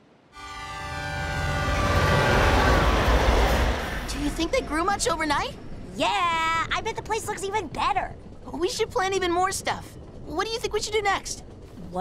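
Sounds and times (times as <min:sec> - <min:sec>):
train rumbling past: 0:00.2 - 0:12.0
freight train horn: 0:00.4 - 0:04.1.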